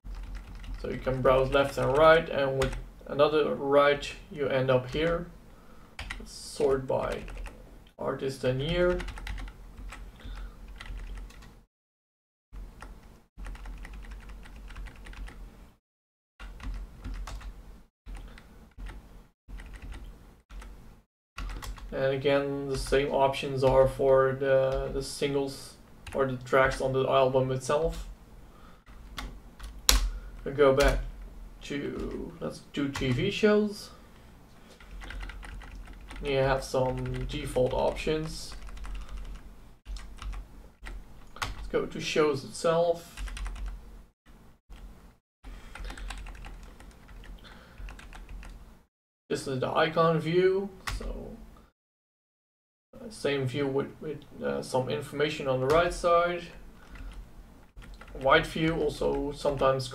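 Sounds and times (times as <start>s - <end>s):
computer keyboard clicking: 0.1s - 0.8s, 8.9s - 10.0s, 12.8s - 15.4s, 21.4s - 21.9s, 34.8s - 36.2s, 36.9s - 37.3s, 38.5s - 40.4s, 45.7s - 48.6s, 57.8s - 58.2s
keyboard keys clicking: 0.1s - 0.8s, 34.8s - 36.2s, 45.8s - 47.3s
steady low hum: 16.4s - 49.7s.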